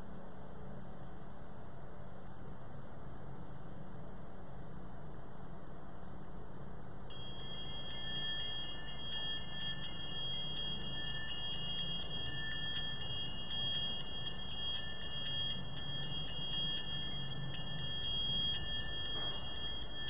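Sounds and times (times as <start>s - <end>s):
small bells jingling: 7.1s - 20.0s.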